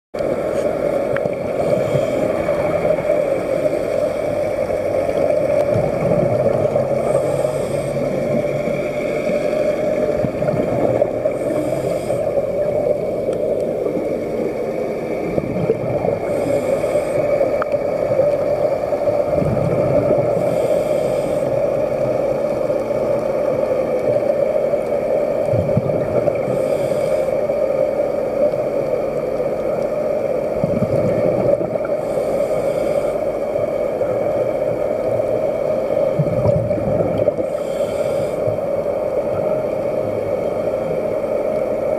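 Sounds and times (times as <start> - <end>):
steady low hum: 0.2 - 41.9.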